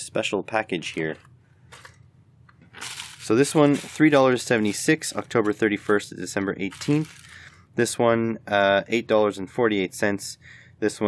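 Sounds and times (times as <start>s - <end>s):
mailers being handled: 1.7s - 2.0s, 2.6s - 7.5s
crinkly rustle: 2.7s - 4.2s, 6.7s - 7.5s.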